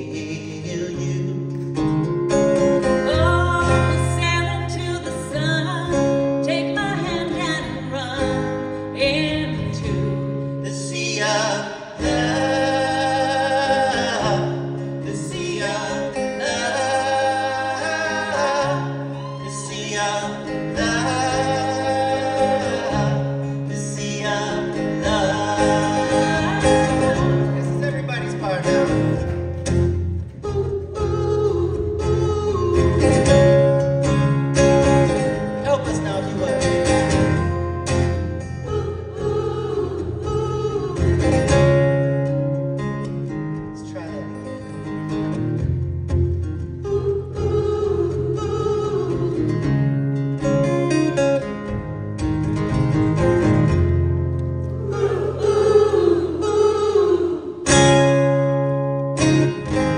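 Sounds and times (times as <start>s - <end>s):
person singing folk song: 0.0s - 2.1s, 2.8s - 42.6s, 46.5s - 51.6s, 54.8s - 59.9s
acoustic guitar: 0.0s - 59.9s.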